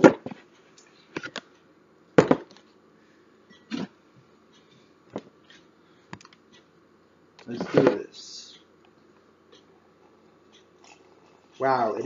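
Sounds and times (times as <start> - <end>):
kitchen items knocking and clunking: 0.0 - 0.4, 2.2 - 2.5.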